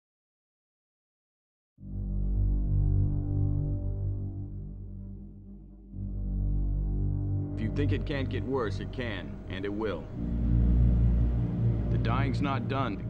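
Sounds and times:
deep low hum: 1.8 - 13.0.

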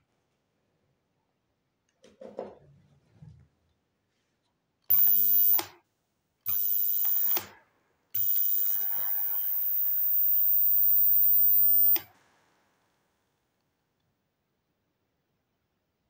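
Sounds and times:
high-pitched electrical whine: 4.9 - 5.6, 6.5 - 7.4, 8.2 - 12.1.

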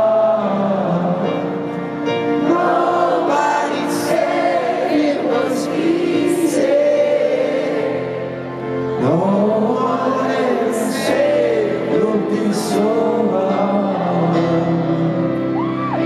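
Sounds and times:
crowd singing together: 0.0 - 15.3
live band piano song: 0.0 - 16.0.

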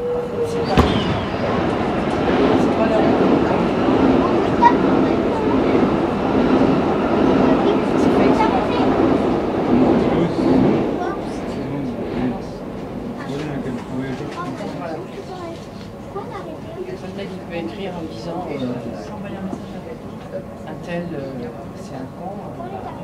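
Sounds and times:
train passing: 0.0 - 23.0.

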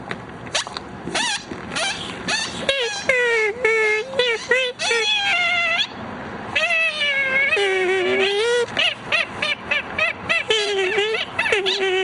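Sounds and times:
high-pitched meow-like cries: 2.3 - 5.9, 6.6 - 8.8.

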